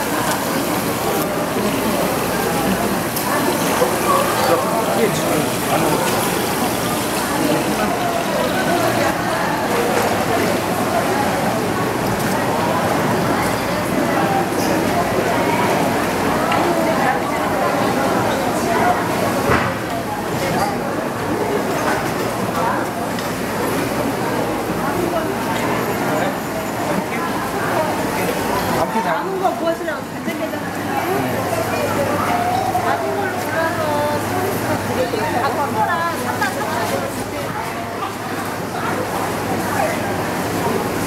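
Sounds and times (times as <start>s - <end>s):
water running and splashing: 0.0s - 20.8s
crowd chatter: 0.0s - 41.0s.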